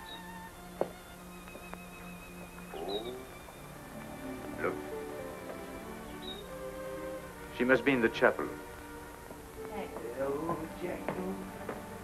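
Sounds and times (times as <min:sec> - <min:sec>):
soft orchestral music: 0:00.0 - 0:12.0.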